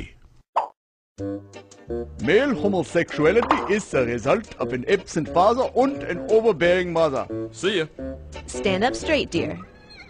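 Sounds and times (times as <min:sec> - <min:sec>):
cartoon pop: 0:00.6 - 0:00.8
background music held notes: 0:01.2 - 0:09.6.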